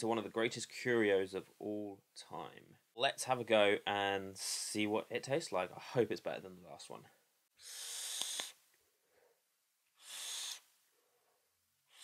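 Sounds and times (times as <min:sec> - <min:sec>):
breathy exhale hiss: 0:07.6 - 0:08.6, 0:10.0 - 0:10.7
e-cigarette airflow hissing: 0:07.6 - 0:08.6, 0:10.0 - 0:10.7.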